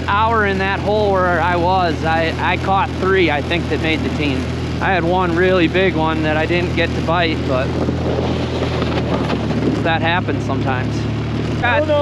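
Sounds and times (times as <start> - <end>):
snowmobile engine running: 0.0 - 12.0
wind noise on microphone: 5.8 - 12.0.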